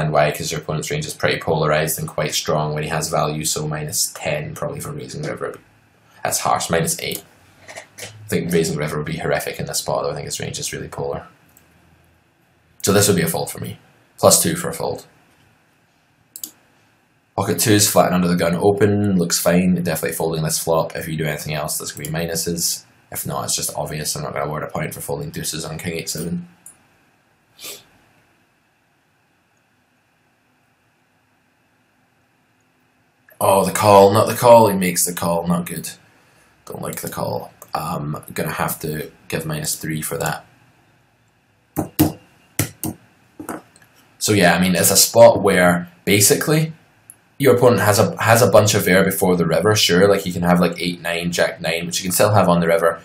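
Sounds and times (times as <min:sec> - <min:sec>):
computer mouse click: 0:16.4 - 0:16.6.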